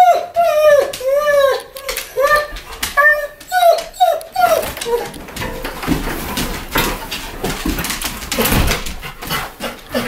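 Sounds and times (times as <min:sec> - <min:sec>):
dog whining: 0:00.0 - 0:05.2.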